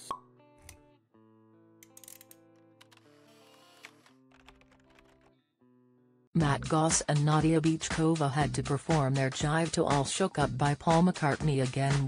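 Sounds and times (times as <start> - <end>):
small clicks: 1.8 - 3.1.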